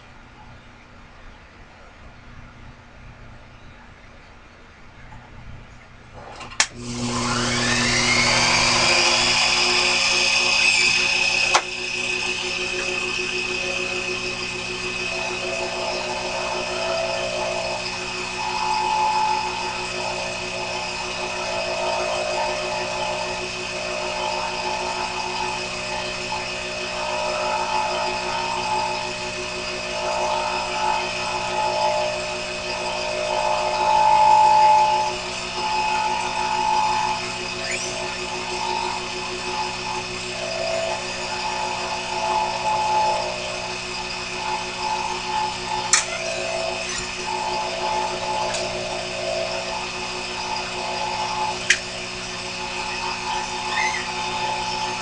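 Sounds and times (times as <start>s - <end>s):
lathe motor whining: 6.2s - 55.0s
sharp click: 45.9s - 46.2s.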